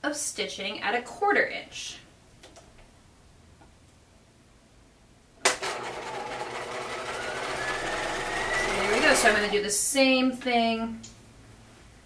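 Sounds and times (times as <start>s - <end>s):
sewing machine running: 5.5s - 9.6s.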